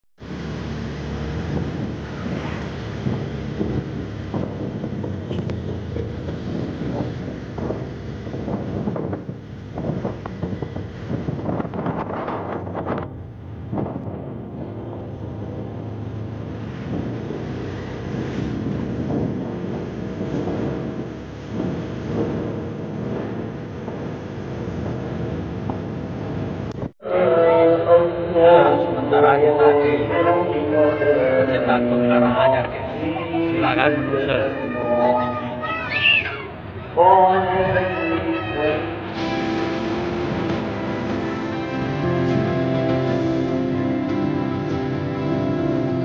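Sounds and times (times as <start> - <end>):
wind buffeting microphone: 0.2 - 27.0, 36.5 - 46.0
street and crowd noise: 0.2 - 46.0.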